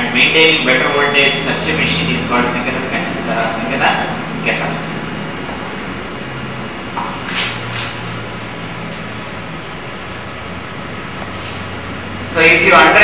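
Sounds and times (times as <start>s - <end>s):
low drone: 0.0s - 13.0s
room hum and hiss: 0.0s - 13.0s.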